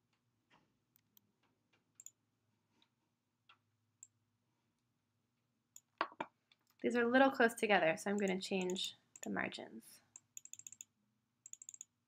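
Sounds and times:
computer mouse clicks: 2.0 - 2.2, 8.2 - 9.3, 10.1 - 11.9.

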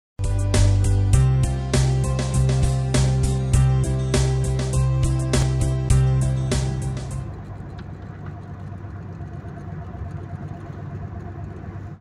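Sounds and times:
car cabin rumble: 2.2 - 12.0
faint steady whine: 6.2 - 12.0.

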